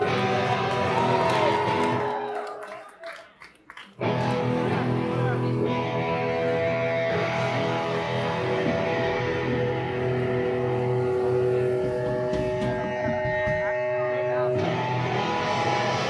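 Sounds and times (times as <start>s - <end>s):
electric guitar chord ringing: 4.0s - 16.0s
punk rock band playing live: 4.0s - 16.0s
knocks: 12.0s - 13.8s.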